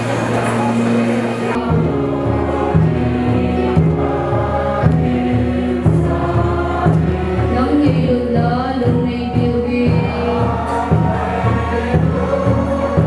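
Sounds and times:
congregation singing a hymn: 0:00.0 - 0:13.0
instrumental accompaniment: 0:00.0 - 0:13.0.

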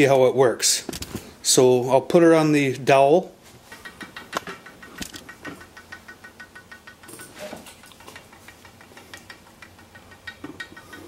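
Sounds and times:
woodpecker toy clicking down pole: 0:03.6 - 0:11.0.

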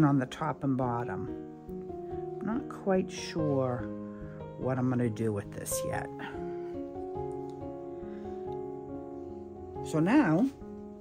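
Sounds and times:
soft instrumental music: 0:00.0 - 0:11.0.

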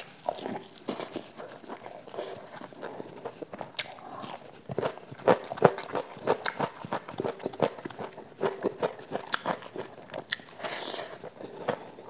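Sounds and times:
chewing and biting fried chicken: 0:00.0 - 0:12.0.

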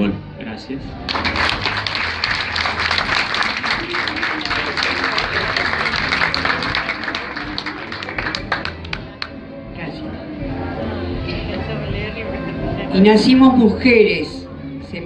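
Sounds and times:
audience applauding: 0:01.1 - 0:09.3.

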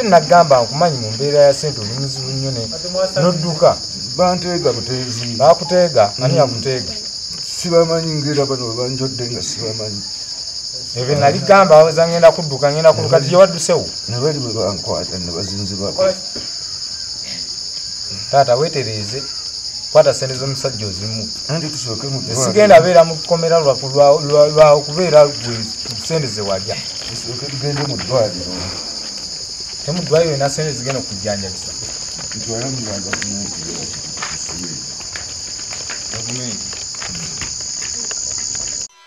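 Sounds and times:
voices talking: 0:00.0 - 0:38.4
crickets chirping: 0:00.0 - 0:39.0.

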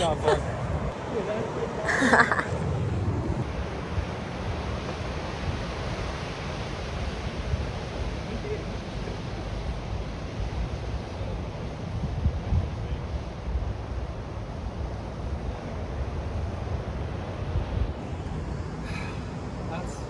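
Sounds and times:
small waves breaking: 0:00.0 - 0:12.0
wind buffeting microphone: 0:00.0 - 0:20.0.

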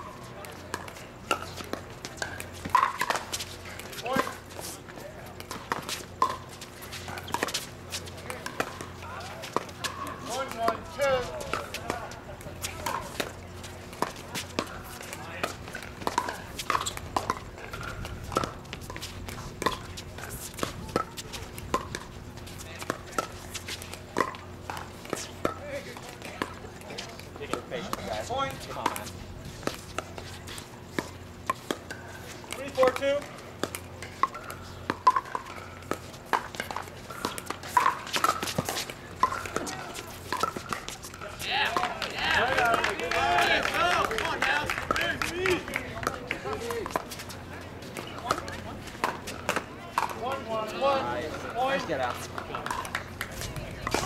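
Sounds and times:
murmur of voices: 0:00.0 - 0:54.0.

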